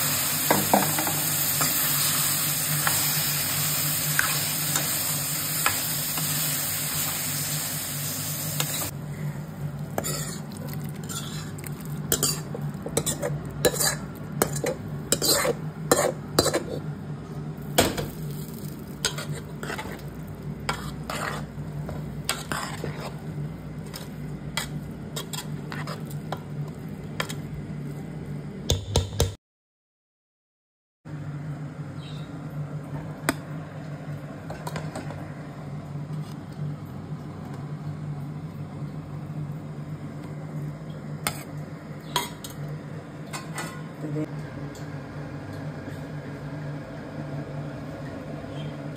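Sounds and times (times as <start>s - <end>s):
steady low hum: 2.5s - 28.7s
metal spoon scraping a pot: 10.0s - 16.8s, 19.0s - 20.0s, 20.7s - 21.5s, 22.3s - 23.2s, 23.9s - 26.1s.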